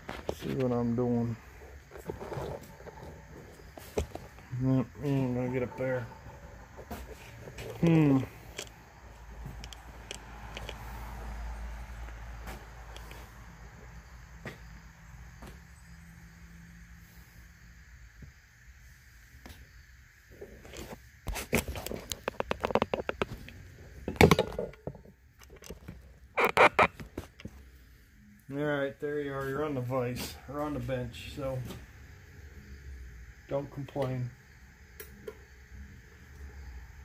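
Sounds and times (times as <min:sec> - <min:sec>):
phone rubbing and bumping: 0:26.4 - 0:27.0.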